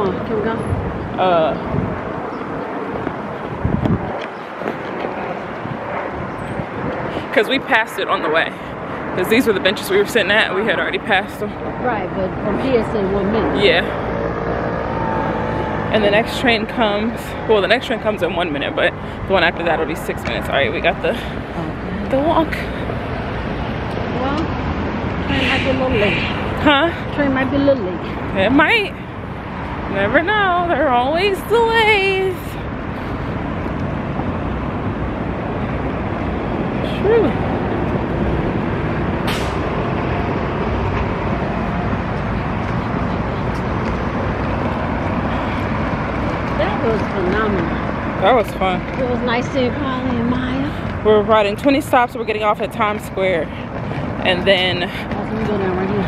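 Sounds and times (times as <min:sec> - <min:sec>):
city street traffic: 0:00.0 - 0:56.0
vehicle engine drone: 0:00.0 - 0:56.0.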